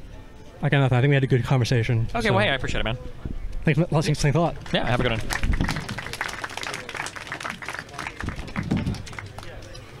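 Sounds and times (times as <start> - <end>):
people getting up from chairs: 7.4 - 9.9.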